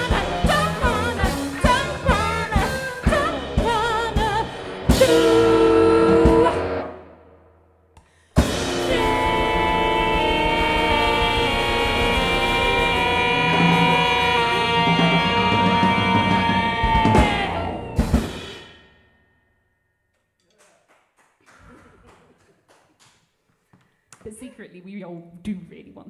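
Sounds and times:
person singing: 0.0 - 6.9, 8.7 - 18.0
drum hits: 8.4 - 18.8
cymbals: 8.4 - 19.3.

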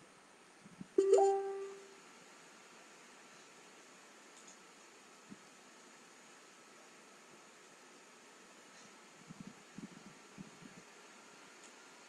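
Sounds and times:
plucked musical note: 1.0 - 1.8.

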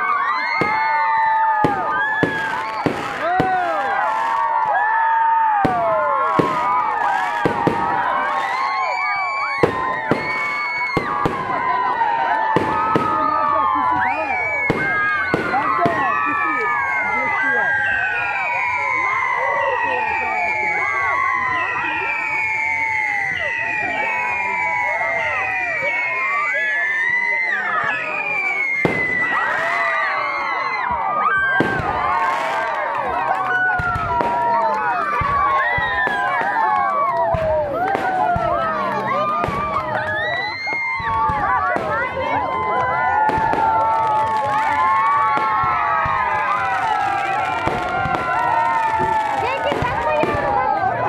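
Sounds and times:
crowd calling and shouting: 0.0 - 51.0
fireworks bursting overhead: 0.0 - 51.0
firework bursts banging: 0.6 - 4.4, 5.6 - 8.9, 9.5 - 14.0, 28.6 - 29.8, 42.9 - 50.7.

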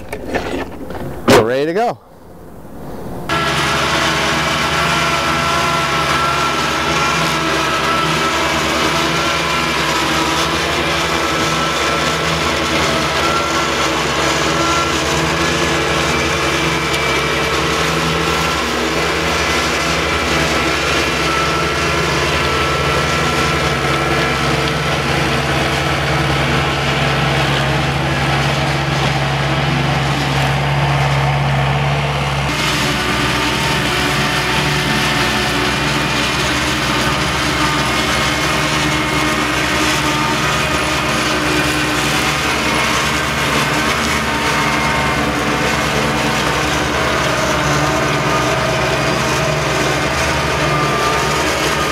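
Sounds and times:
diesel engine running under load: 0.0 - 51.9
mower cutting grass: 3.3 - 51.9.

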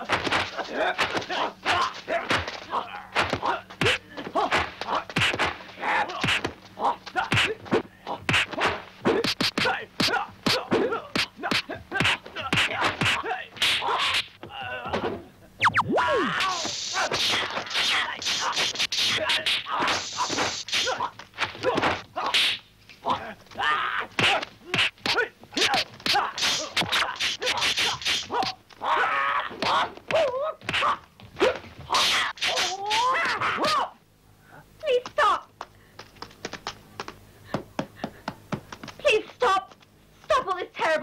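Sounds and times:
fighters shouting: 0.0 - 14.9, 15.8 - 22.4, 23.0 - 34.0
punch and kick impacts: 3.2 - 6.6
hit with a cry: 9.1 - 33.9.

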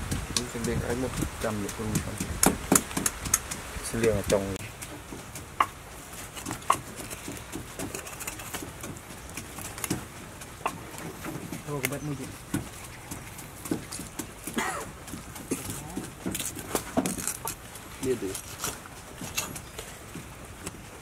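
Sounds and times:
cleaver clicking on bone: 0.1 - 5.8, 6.4 - 17.6.

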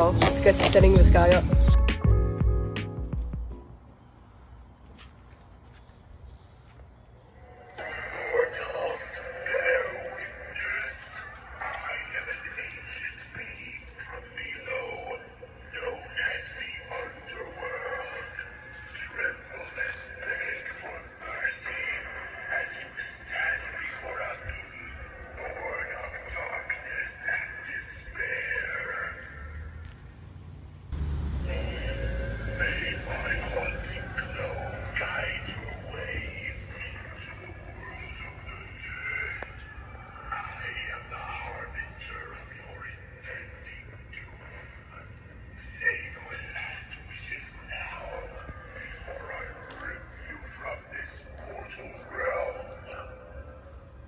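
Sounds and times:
spooky recorded voice: 0.0 - 1.8, 7.4 - 30.0, 31.0 - 54.0
low rumble: 30.5 - 39.7.

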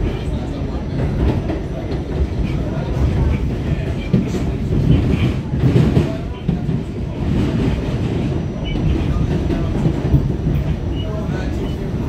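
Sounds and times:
subway wheels rumbling on rail: 0.0 - 12.0.

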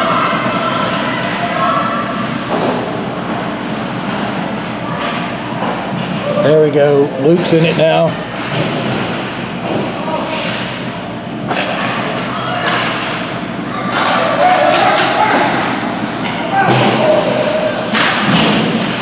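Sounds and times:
murmur of spectators: 0.0 - 19.0
puck and sticks hitting boards: 11.4 - 19.0.

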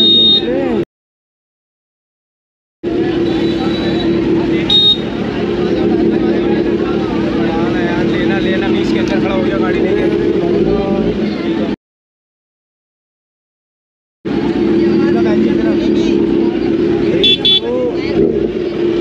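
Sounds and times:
high horn beep: 0.0 - 0.5, 3.2 - 5.2, 17.2 - 17.7
crowd chattering: 0.0 - 0.8, 2.8 - 11.8, 14.3 - 19.0
motorcycle engine idling: 2.9 - 11.7, 14.3 - 19.0.

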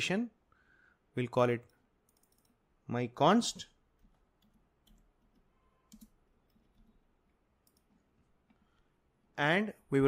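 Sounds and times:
computer keyboard keystrokes: 2.1 - 2.6, 4.0 - 7.0, 7.6 - 8.0
mouse clicks: 7.6 - 8.0.

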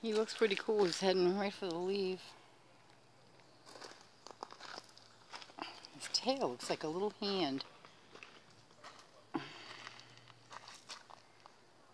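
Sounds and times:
faint rustling and crunching: 2.7 - 11.9.

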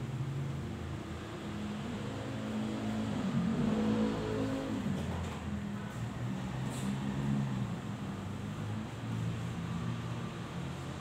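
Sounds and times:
engine revving: 1.4 - 5.0.

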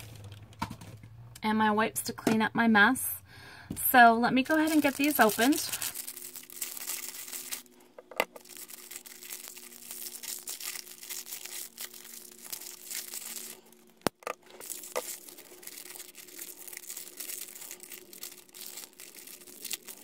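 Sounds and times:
crinkly wrapping tearing: 4.4 - 7.8, 8.4 - 20.0.

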